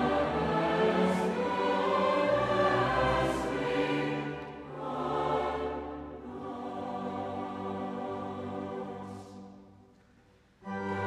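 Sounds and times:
choir singing: 0:00.0 - 0:09.9, 0:10.6 - 0:11.0
string orchestra: 0:00.0 - 0:11.0.

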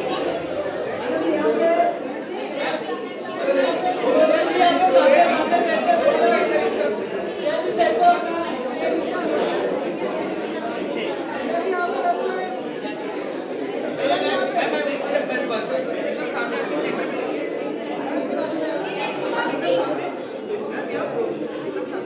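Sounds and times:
chatter of many people: 0:00.0 - 0:22.0.

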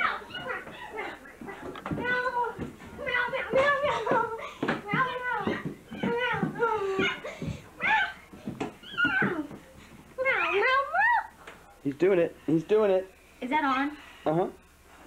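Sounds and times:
children's high-pitched voices: 0:00.0 - 0:01.3, 0:01.9 - 0:09.6, 0:10.2 - 0:11.4.

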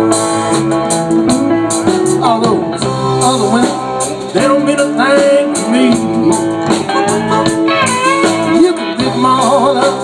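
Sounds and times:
blues band playing: 0:00.0 - 0:10.0
electric guitar: 0:00.0 - 0:10.0.

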